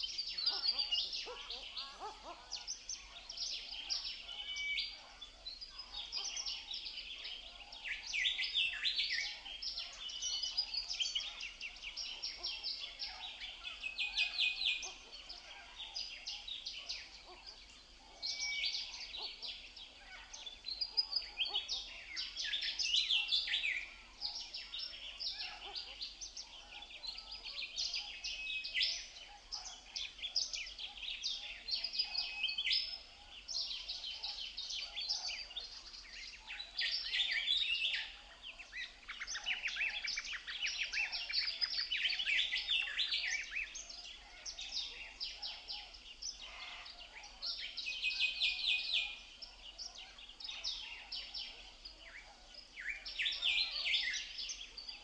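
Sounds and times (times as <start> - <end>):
songbirds chirping and trilling: 0.0 - 55.0.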